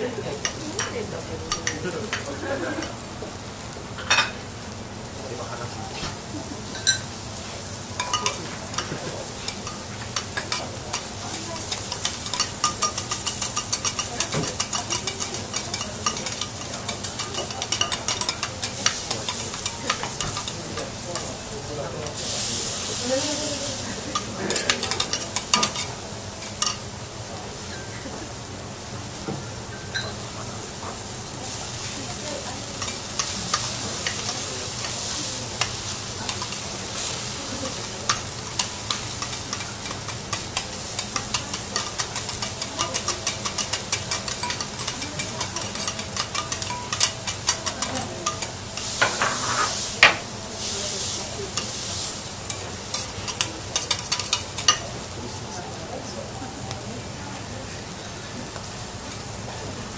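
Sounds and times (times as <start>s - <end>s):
food sizzling in a hot pan: 0.0s - 59.9s
metal utensil scraping a pan: 8.0s - 21.4s, 32.8s - 50.2s, 51.0s - 54.9s.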